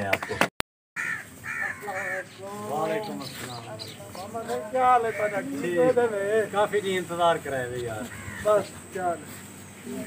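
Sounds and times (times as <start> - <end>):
people exchanging greetings: 1.1 - 10.0.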